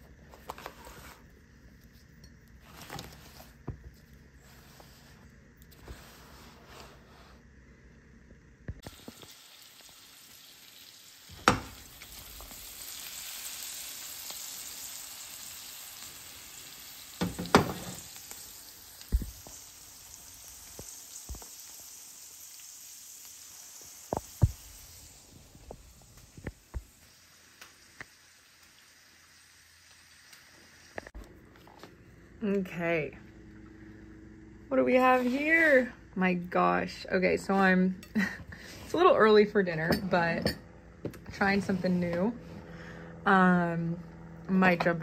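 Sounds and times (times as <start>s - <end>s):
food sizzling in a frying pan: 8.8s - 31.2s.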